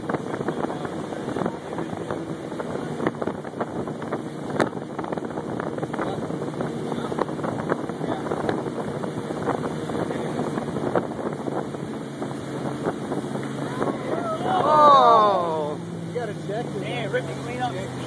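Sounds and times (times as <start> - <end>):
motorboat running at speed: 0.0 - 18.0
water rushing past hull: 0.0 - 18.0
wind buffeting microphone: 0.0 - 18.0.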